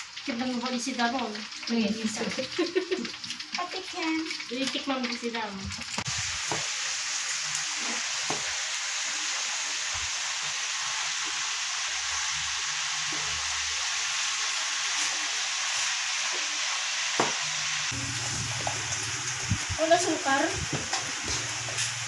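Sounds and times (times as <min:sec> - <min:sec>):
food sizzling in a pan: 0:00.0 - 0:22.0.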